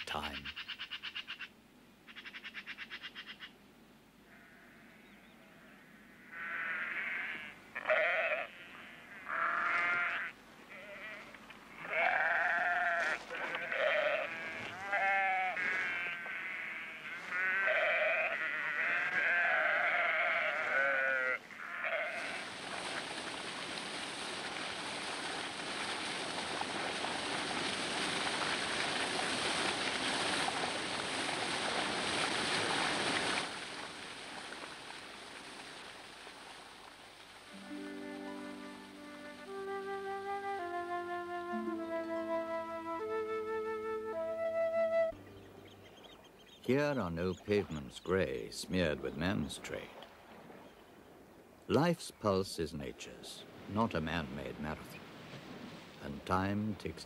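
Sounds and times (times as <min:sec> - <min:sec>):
sheep bleating: 0:04.3 - 0:22.5.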